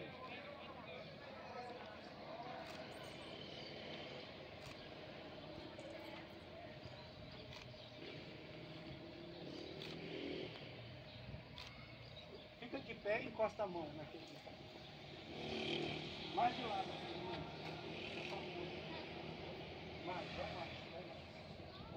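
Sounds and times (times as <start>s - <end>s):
distant traffic hum: 0.0s - 21.9s.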